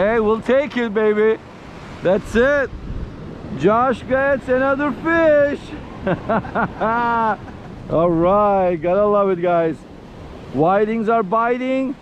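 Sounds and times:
man laughing: 0:05.7 - 0:08.0.

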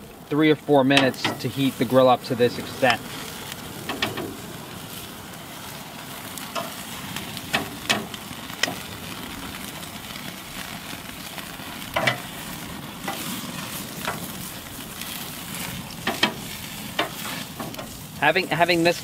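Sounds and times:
ribs sizzling on a grill: 0:00.0 - 0:19.0.

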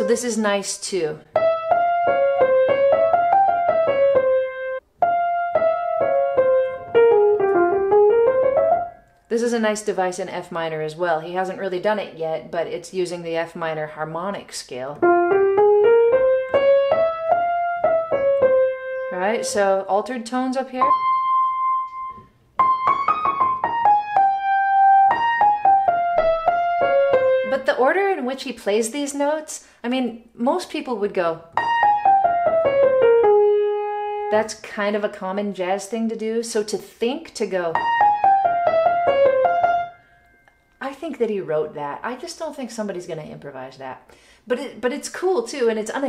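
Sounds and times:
grand piano melody: 0:01.2 - 0:09.2, 0:15.0 - 0:19.9, 0:20.8 - 0:27.7, 0:31.5 - 0:34.5, 0:37.7 - 0:40.5.

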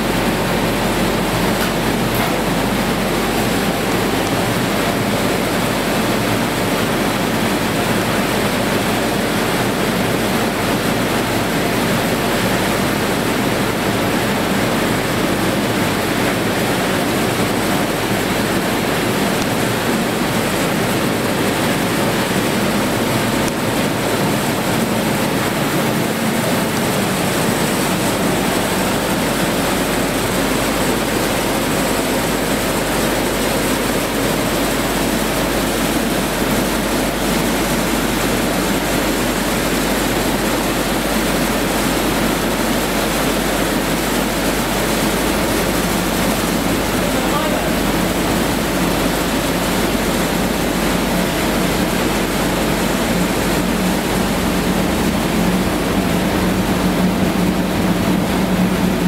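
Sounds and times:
grain dryer machinery running: 0:00.0 - 0:59.0.

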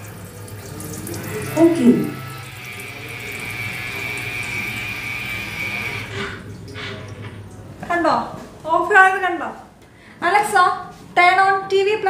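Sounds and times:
water running into sink: 0:00.0 - 0:07.8
thin high whine: 0:00.6 - 0:06.4.

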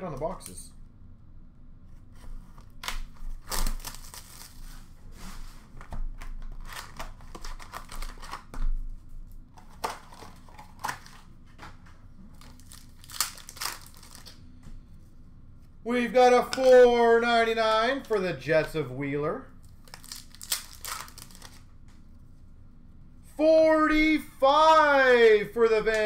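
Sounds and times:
plastic wrap crinkling and tearing: 0:02.8 - 0:04.9, 0:06.2 - 0:08.5, 0:09.6 - 0:11.3, 0:12.3 - 0:14.4, 0:19.6 - 0:21.7.

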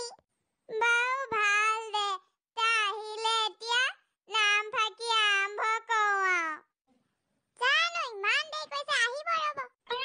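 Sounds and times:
high-pitched cartoon voice: 0:00.0 - 0:06.7, 0:07.6 - 0:10.0.

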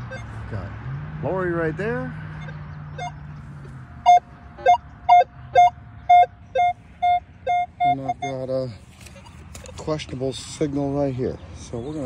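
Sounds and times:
metal detector beeping: 0:00.0 - 0:00.3, 0:02.4 - 0:03.2, 0:04.0 - 0:08.6.

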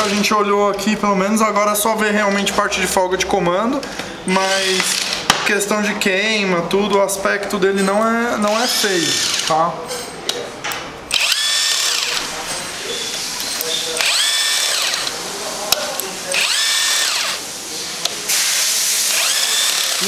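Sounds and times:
cordless power driver whining: 0:08.5 - 0:09.5, 0:11.1 - 0:12.3, 0:14.0 - 0:15.2, 0:16.3 - 0:17.4, 0:19.1 - 0:20.0.

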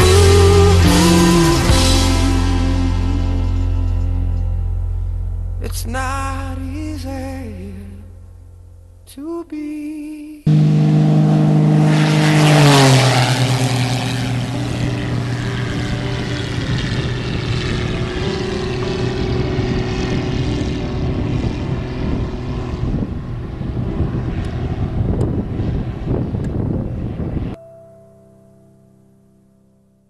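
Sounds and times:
propeller plane engine drone: 0:00.0 - 0:05.6, 0:10.5 - 0:27.6.

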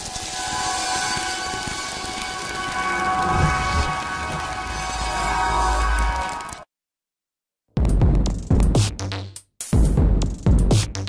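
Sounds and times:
hissing synthesized noise wash: 0:00.0 - 0:06.6
low rumble: 0:00.0 - 0:06.6
steady synth tones: 0:00.0 - 0:06.6.

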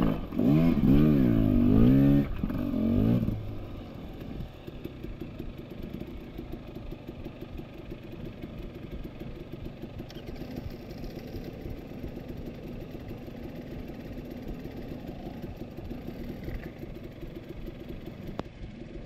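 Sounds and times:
dirt bike engine idling: 0:00.0 - 0:19.0.

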